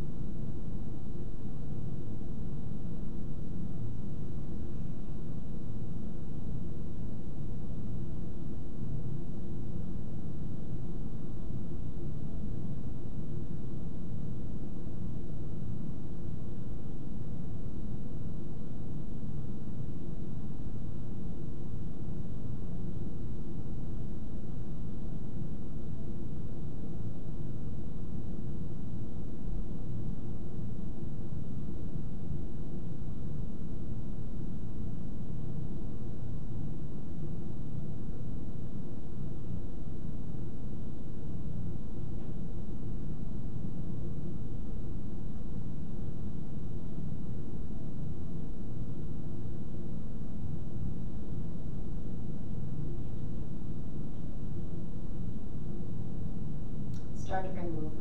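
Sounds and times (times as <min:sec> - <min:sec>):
low room rumble: 0:00.0 - 0:58.0.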